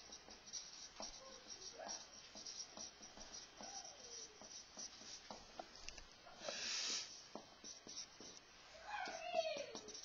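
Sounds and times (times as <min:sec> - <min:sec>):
marker squeaks: 0:00.0 - 0:05.4, 0:06.8 - 0:10.0
marker writing on whiteboard: 0:00.0 - 0:10.0.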